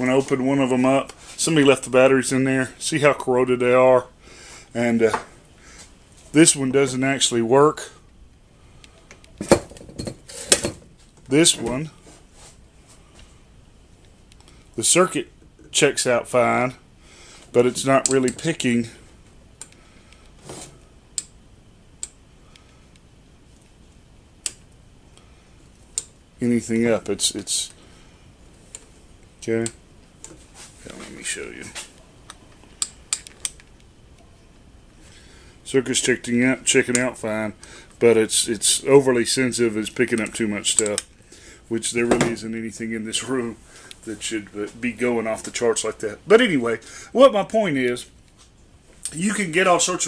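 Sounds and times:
metal clinks and knocks on workbench: 0:09.4 - 0:10.9.

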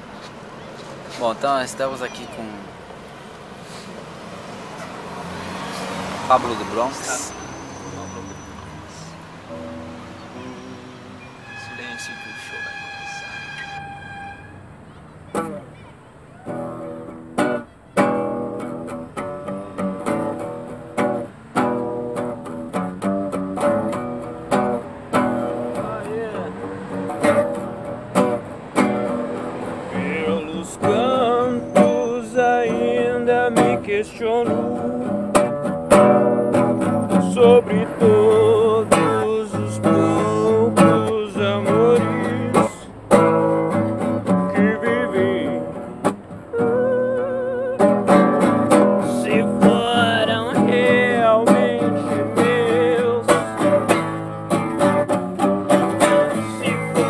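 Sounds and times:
acoustic guitar strumming: 0:04.5 - 0:57.0
person singing: 0:10.3 - 0:11.4, 0:29.9 - 0:35.4, 0:37.1 - 0:42.9, 0:44.5 - 0:53.9, 0:55.8 - 0:57.0.

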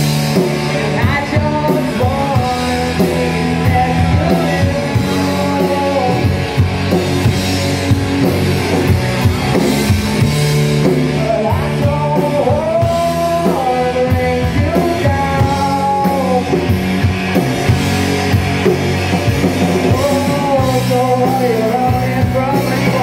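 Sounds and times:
singer: 0:00.0 - 0:07.3, 0:08.7 - 0:17.1, 0:19.4 - 0:23.0
rock band playing: 0:00.0 - 0:23.0.

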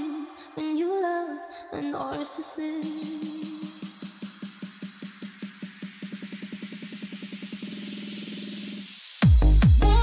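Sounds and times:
hiss: 0:02.8 - 0:09.3.

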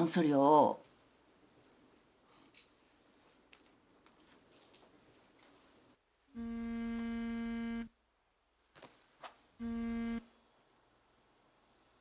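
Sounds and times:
mobile phone vibrating: 0:06.4 - 0:07.9, 0:09.6 - 0:10.3.

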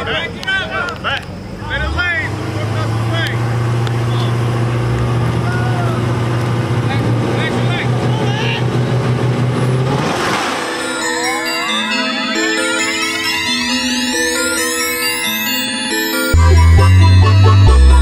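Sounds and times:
engines running at raised revs: 0:00.0 - 0:11.7
people shouting: 0:05.3 - 0:06.1
rising whoosh: 0:09.5 - 0:14.5
music: 0:10.3 - 0:18.0.

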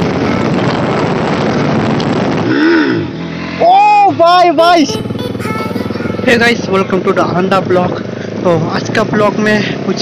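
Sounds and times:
wind rushing over microphone: 0:00.0 - 0:03.6
motorcycle engine at speed: 0:00.0 - 0:10.0
pitched note rising and falling: 0:04.8 - 0:07.1.

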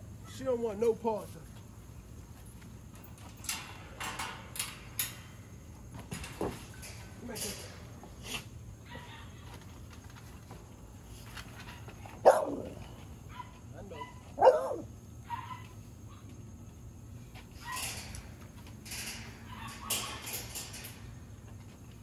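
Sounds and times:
dog barking: 0:12.2 - 0:15.7.

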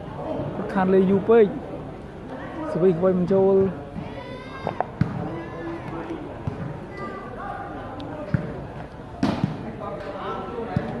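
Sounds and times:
crowd chatter: 0:00.0 - 0:11.0
volleyball thuds: 0:09.2 - 0:09.7.

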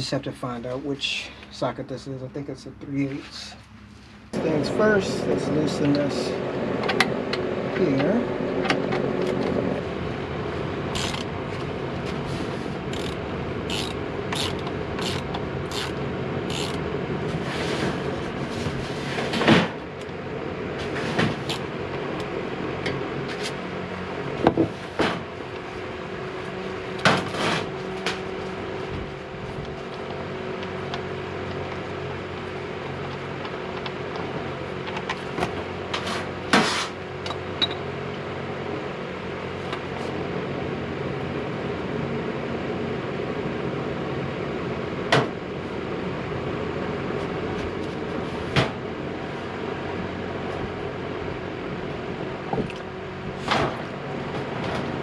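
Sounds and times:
fan hum: 0:00.0 - 0:55.0.

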